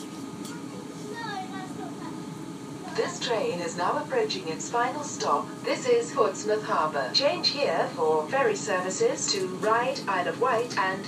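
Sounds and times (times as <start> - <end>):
faint voices: 0.3 - 11.0.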